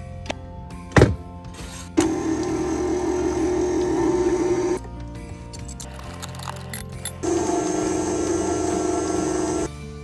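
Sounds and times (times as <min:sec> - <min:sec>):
background music: 0:00.0 - 0:10.0
stand mixer whisk beating butter: 0:02.0 - 0:04.8, 0:07.2 - 0:09.7.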